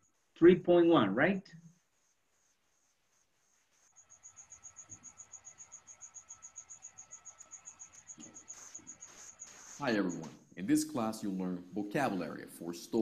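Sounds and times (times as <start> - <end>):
cricket chirping: 3.5 - 10.3.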